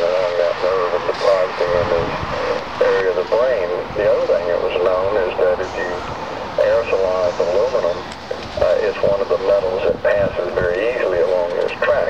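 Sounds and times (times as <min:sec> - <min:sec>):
person talking: 0:00.0 - 0:06.0, 0:06.6 - 0:12.0.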